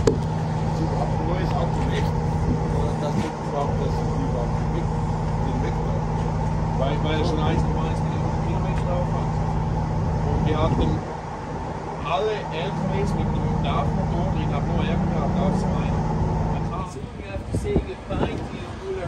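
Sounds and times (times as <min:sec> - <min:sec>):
diesel truck engine idling: 0:00.0 - 0:19.0.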